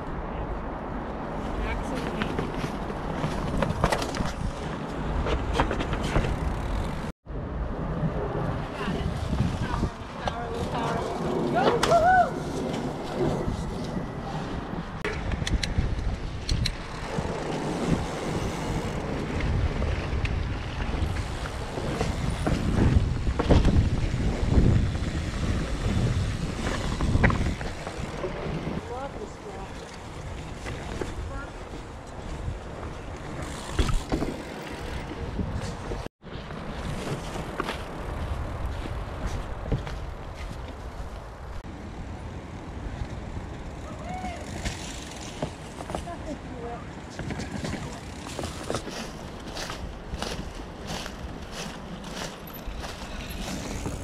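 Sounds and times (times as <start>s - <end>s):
wind noise on microphone: 0.0s - 46.1s, 46.9s - 54.0s
bike rattling and knocking: 1.9s - 7.1s, 15.0s - 29.1s, 32.7s - 40.0s, 47.1s - 54.0s
bike tyres rolling over leaves: 8.3s - 14.9s, 16.2s - 54.0s.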